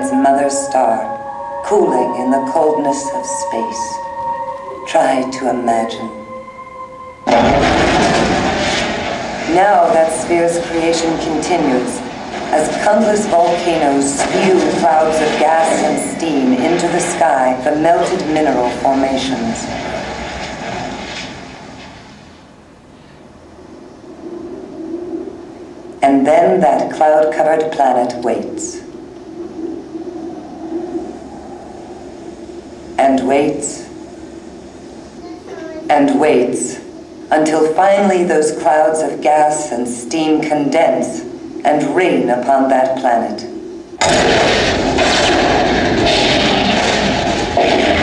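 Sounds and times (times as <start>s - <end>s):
volcano eruption rumble: 0.0s - 22.8s, 23.4s - 48.0s.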